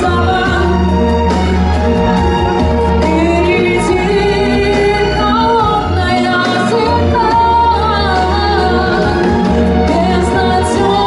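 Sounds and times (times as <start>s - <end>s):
woman singing into a microphone: 0.0s - 1.0s, 3.0s - 11.0s
instrumental accompaniment with bass: 0.0s - 11.0s.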